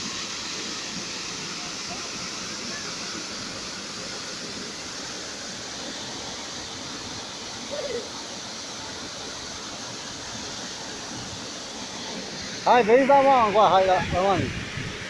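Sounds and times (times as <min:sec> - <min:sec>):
waterfall rushing onto rock: 0:00.0 - 0:15.0.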